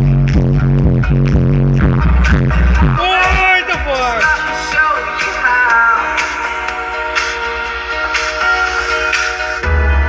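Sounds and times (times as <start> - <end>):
electronic dance music with heavy bass: 0.0 - 10.0.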